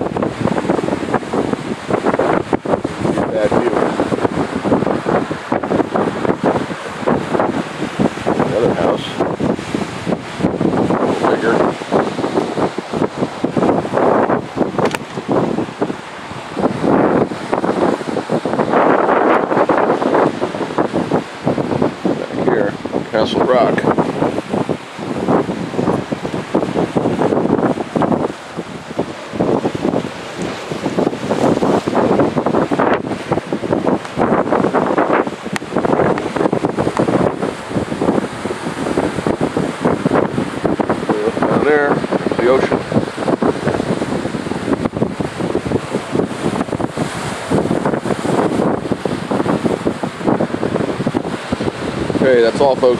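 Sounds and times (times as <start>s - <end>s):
surf breaking on rocks: 0.0s - 52.9s
wind buffeting microphone: 0.0s - 52.9s.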